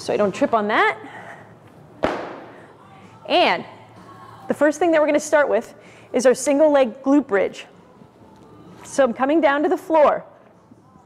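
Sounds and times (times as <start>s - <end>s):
exercise mat slapping floor: 2.0s - 2.4s.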